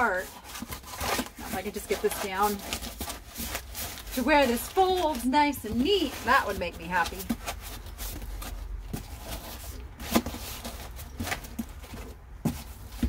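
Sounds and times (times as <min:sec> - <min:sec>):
cardboard flaps creaking and rustling: 0:00.0 - 0:13.0.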